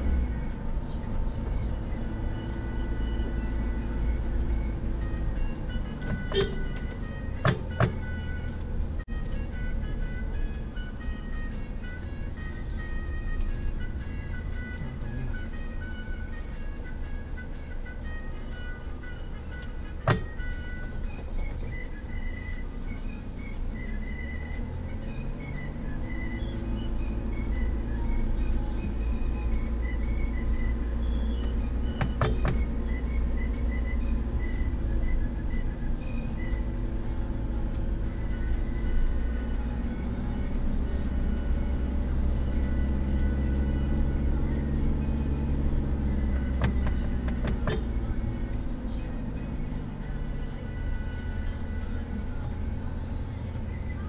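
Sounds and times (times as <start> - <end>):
car rumbling along rough lane: 0.0 - 54.0
road noise: 0.0 - 54.0.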